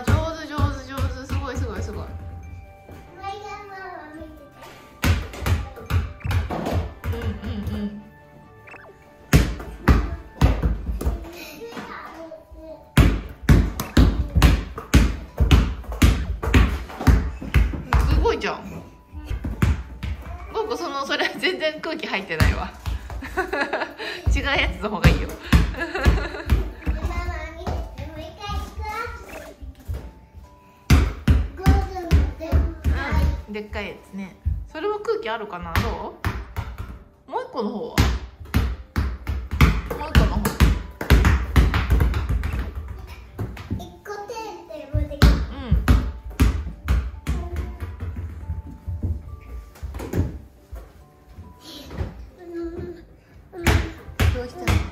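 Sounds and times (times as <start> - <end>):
basketball bouncing on wooden floor: 0.0 - 2.5, 5.0 - 7.8, 8.6 - 11.3, 13.0 - 20.4, 22.3 - 23.4, 24.3 - 30.1, 30.9 - 33.9, 35.5 - 37.1, 38.0 - 43.8, 45.0 - 50.4, 53.6 - 54.9.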